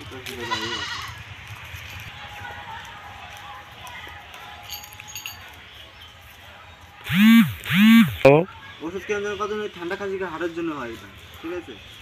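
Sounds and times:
goat bleating: 0:00.4 - 0:01.2.

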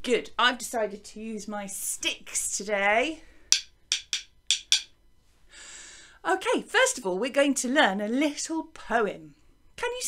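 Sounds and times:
wooden rhythm sticks clicking: 0:03.5 - 0:04.9.

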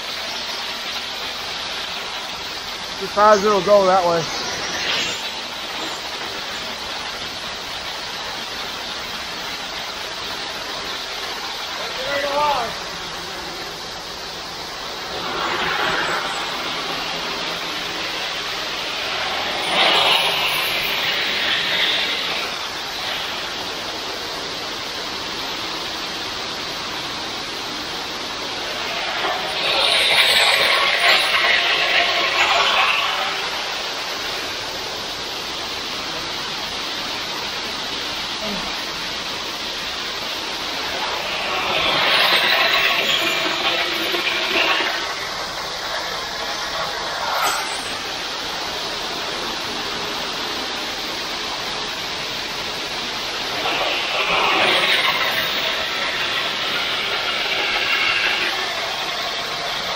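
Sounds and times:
wet concrete rushing down chute: 0:00.0 - 0:59.9
short rising squeal: 0:15.0 - 0:22.7, 0:46.5 - 0:48.6.

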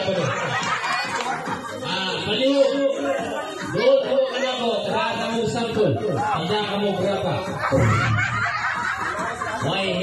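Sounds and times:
people laughing: 0:00.0 - 0:04.6, 0:05.6 - 0:10.0
crowd voices: 0:00.0 - 0:10.0.

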